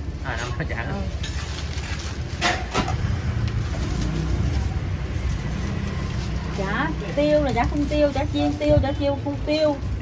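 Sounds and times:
low rumble of street traffic: 0:00.0 - 0:10.0
plastic bag crinkling: 0:01.0 - 0:02.4, 0:03.4 - 0:10.0.

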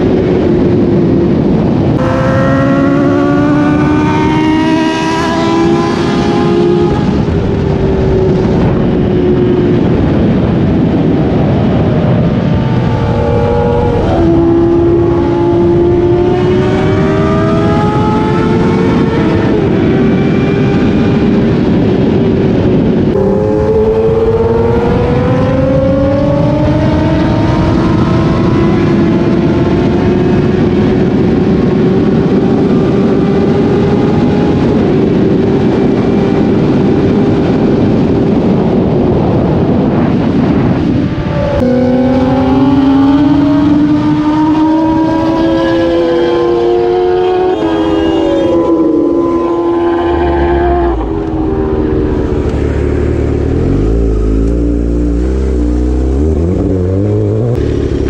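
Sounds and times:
motorcycle engine accelerating: 0:00.0 - 0:58.0
wind noise: 0:00.0 - 0:58.0.

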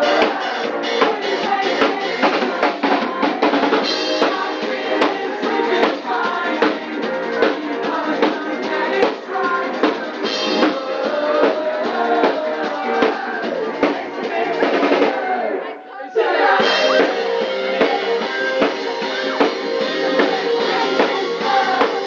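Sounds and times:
drum kit beat: 0:00.0 - 0:15.5, 0:16.4 - 0:22.0
live pop-rock band playing: 0:00.0 - 0:15.6, 0:16.3 - 0:22.0.

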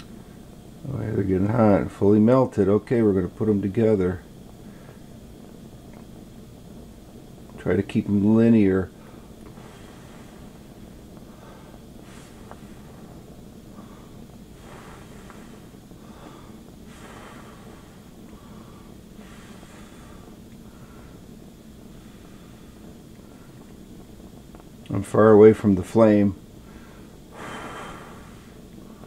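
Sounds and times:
low background hiss: 0:00.0 - 0:29.0
person breathing through nose: 0:09.0 - 0:21.2, 0:26.6 - 0:29.0.

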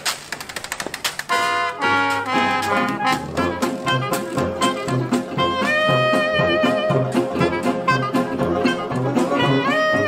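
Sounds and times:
held brass chords: 0:01.3 - 0:10.0.

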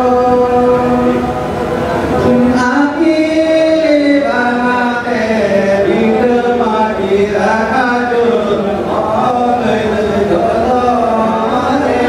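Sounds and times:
men singing folk song: 0:02.2 - 0:12.0.

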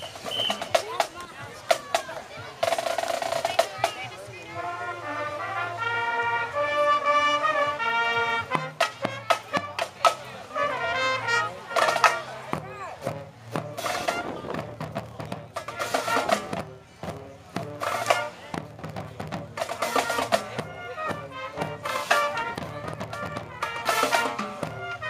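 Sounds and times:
drum beats: 0:00.0 - 0:25.0
marching band playing: 0:00.0 - 0:25.0
brass chords: 0:04.5 - 0:25.0.

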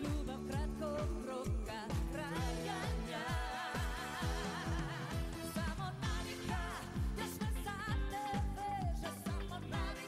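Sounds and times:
woman singing pop ballad: 0:00.0 - 0:10.0
backing band: 0:01.2 - 0:10.0.

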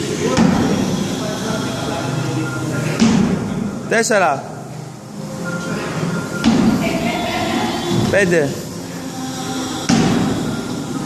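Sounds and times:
faint music: 0:00.0 - 0:11.0
feet landing on box thump: 0:09.9 - 0:10.4.

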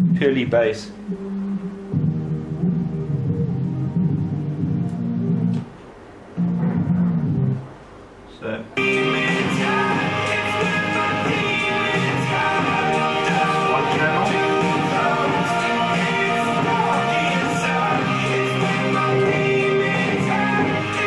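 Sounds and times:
bass-only music from small speaker: 0:00.0 - 0:07.7, 0:08.8 - 0:21.0
song with guitar: 0:08.8 - 0:21.0.

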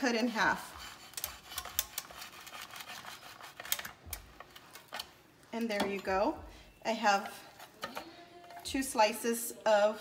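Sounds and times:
knife clicking and scraping plastic: 0:01.1 - 0:05.2.

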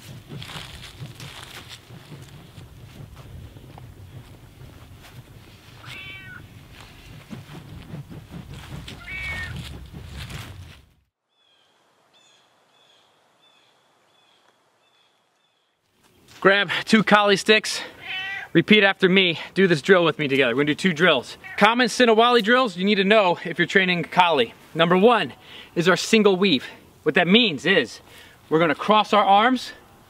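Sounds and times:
wind rumble on microphone: 0:00.0 - 0:11.0
cat meowing: 0:05.8 - 0:06.4, 0:09.0 - 0:09.6, 0:18.0 - 0:18.5.

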